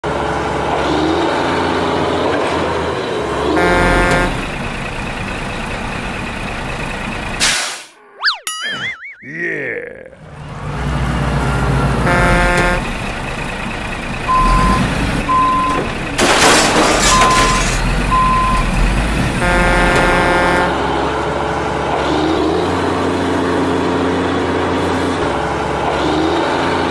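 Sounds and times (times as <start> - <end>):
truck engine running: 0.0 - 7.5, 10.2 - 26.9
truck horn honk: 3.5 - 4.6, 11.9 - 13.0, 19.4 - 21.1
air-brake hiss: 7.4 - 8.0
truck reversing beep: 11.0 - 16.0, 17.0 - 18.8.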